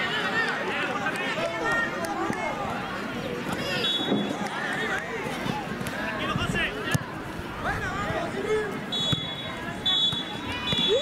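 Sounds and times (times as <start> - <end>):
voices shouting and calling: 0.0 - 11.0.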